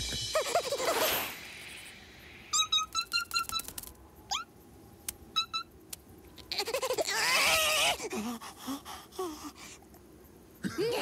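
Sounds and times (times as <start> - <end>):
cartoon chick peeping: 2.5 - 4.5
tiny clicking steps: 3.1 - 4.0.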